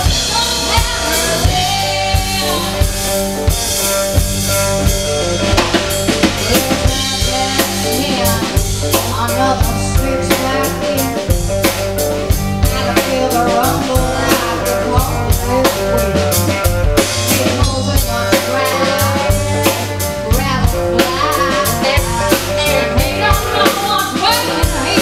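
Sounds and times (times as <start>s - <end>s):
bass guitar: 0.0s - 25.0s
drum kit beat: 0.0s - 25.0s
electric guitars: 0.0s - 25.0s.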